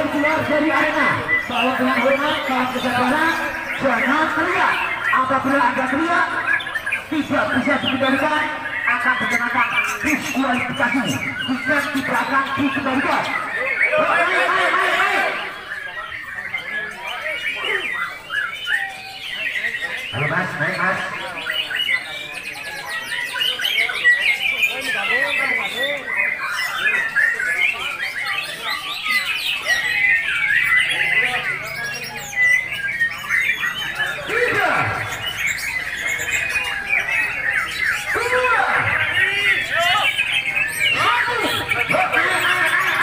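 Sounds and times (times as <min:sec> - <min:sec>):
songbirds chorus: 0:00.0 - 0:43.0.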